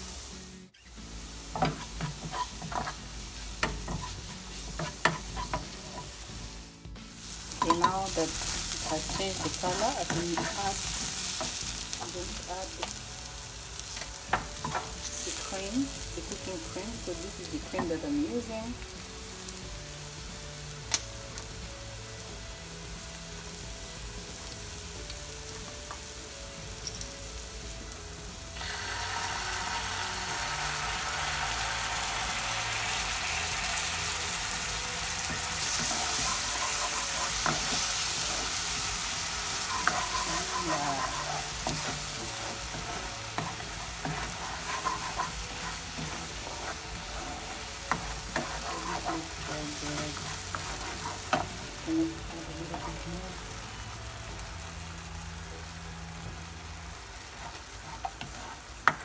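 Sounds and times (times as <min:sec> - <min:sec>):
onion and garlic sizzling in pan: 0:00.0 - 0:59.0.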